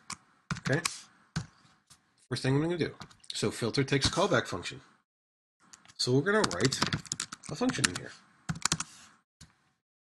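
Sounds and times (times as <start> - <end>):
computer keyboard keystrokes: 5.8 - 8.9.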